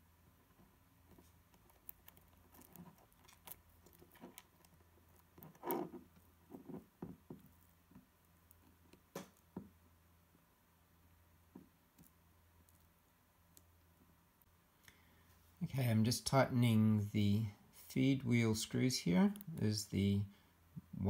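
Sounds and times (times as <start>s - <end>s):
faint low hum: 0.0s - 21.0s
small metal parts clicking and tapping: 1.5s - 5.9s.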